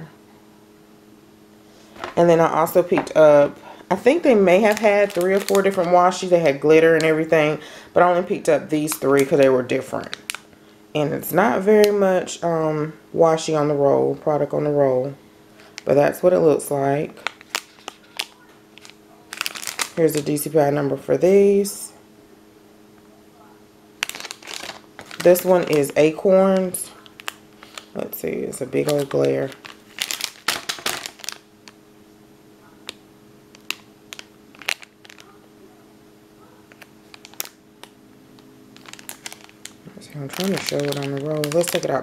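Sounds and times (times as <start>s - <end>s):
faint steady hum: 0.0s - 42.0s
plastic packaging crinkling: 1.8s - 7.4s, 8.8s - 10.6s, 17.1s - 20.5s, 24.0s - 31.8s, 32.8s - 35.5s, 36.6s - 42.0s.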